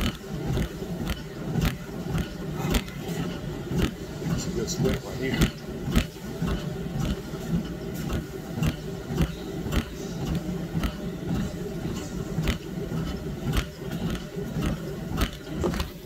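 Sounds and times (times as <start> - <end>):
low mechanical hum: 0.0 - 16.0.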